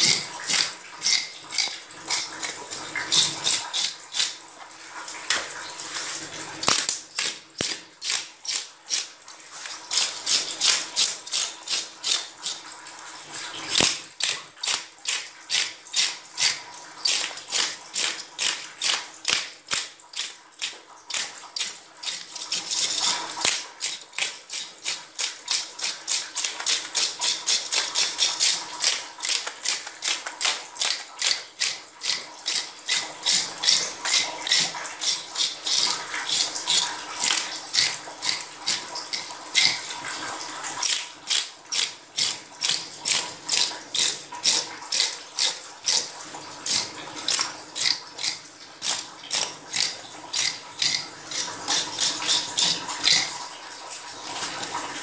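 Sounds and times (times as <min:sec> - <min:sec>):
scaler scraping fish scales: 0:00.0 - 0:04.4, 0:05.9 - 0:12.6, 0:21.1 - 0:40.0, 0:40.7 - 0:53.4.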